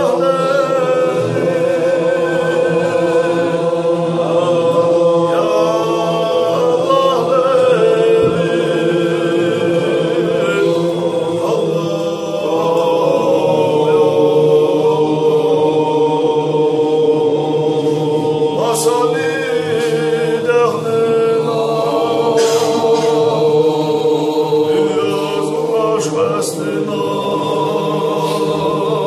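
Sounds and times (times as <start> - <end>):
men chanting together: 0.0 - 29.0.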